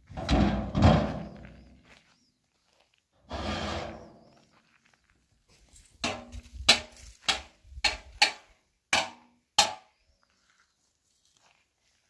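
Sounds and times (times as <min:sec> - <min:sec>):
metal drum scraping on stony ground: 0:00.0 - 0:01.7, 0:03.2 - 0:04.4.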